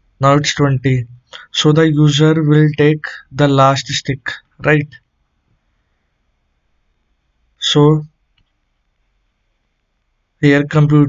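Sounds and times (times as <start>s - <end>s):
person speaking: 0.2s - 5.0s, 7.6s - 8.1s, 10.4s - 11.0s.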